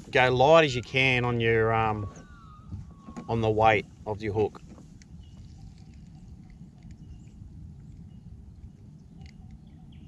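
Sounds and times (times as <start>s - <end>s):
distant birds chirping: 0.0s - 10.0s
wind rumble on microphone: 0.0s - 10.0s.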